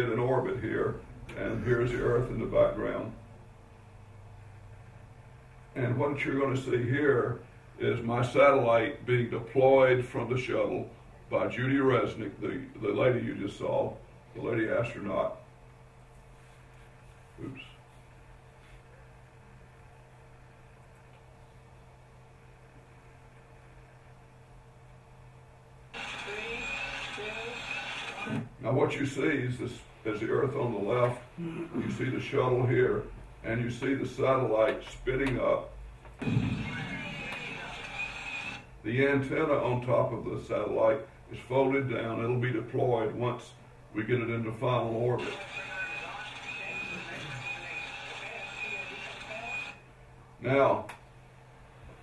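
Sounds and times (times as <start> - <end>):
faint room hum: 0.0 - 52.0.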